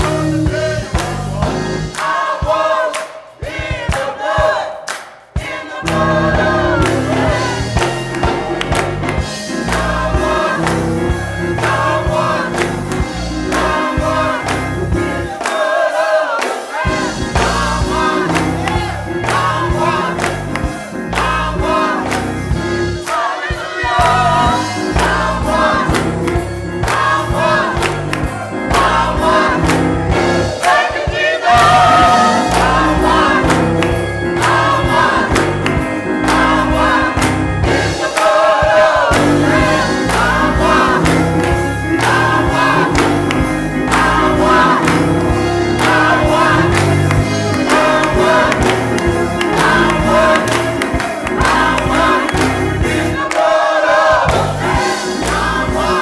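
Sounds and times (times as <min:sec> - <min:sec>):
band with pulsing bass: 0:00.0 - 0:02.0, 0:05.8 - 0:15.4, 0:16.9 - 0:23.0, 0:24.0 - 0:30.6, 0:31.5 - 0:38.1, 0:39.1 - 0:53.2, 0:54.2 - 0:56.0
gospel choir singing: 0:00.0 - 0:56.0
hand clapping: 0:01.9 - 0:06.1, 0:06.8 - 0:23.3, 0:25.0 - 0:30.0, 0:30.6 - 0:37.5, 0:38.1 - 0:53.6, 0:54.3 - 0:55.9.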